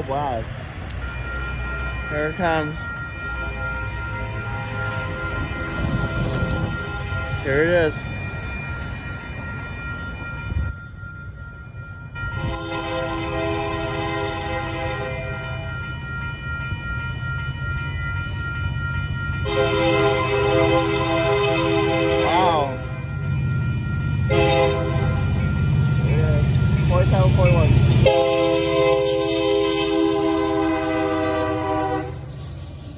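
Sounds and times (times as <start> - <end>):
train rumbling: 0.0 - 32.9
locomotive air horn: 12.4 - 15.2, 19.4 - 22.7, 24.3 - 25.3, 28.0 - 32.3.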